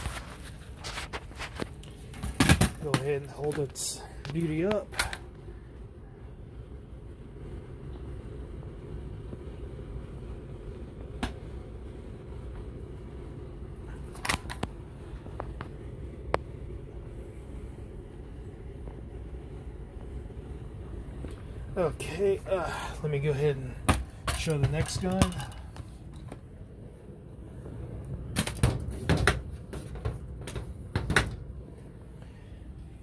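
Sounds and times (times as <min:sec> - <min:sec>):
steady low hum: 0:00.0 - 0:33.0
handling clicks and knocks: 0:00.8 - 0:05.2, 0:23.8 - 0:26.4.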